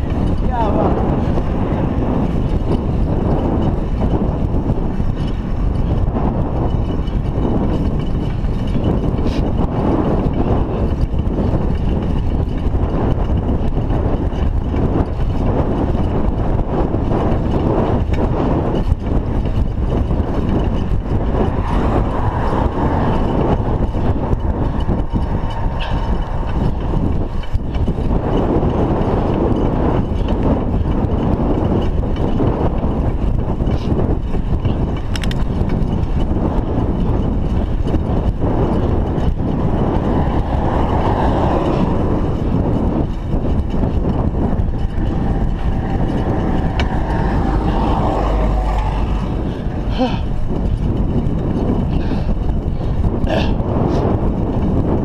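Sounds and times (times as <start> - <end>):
bicycle tyre and road noise: 0.0 - 55.0
wind rushing over microphone: 0.0 - 55.0
vehicle engine overtaking: 20.0 - 30.1, 38.7 - 52.0.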